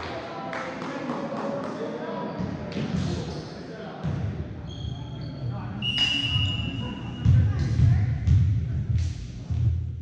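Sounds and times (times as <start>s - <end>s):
crowd chatter: 0.0s - 8.9s
referee's whistle: 5.8s - 7.2s.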